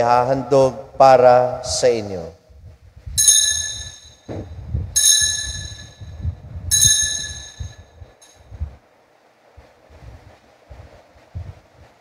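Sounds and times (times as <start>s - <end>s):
altar bell ringing: 3.2s - 4.3s, 5.0s - 7.9s.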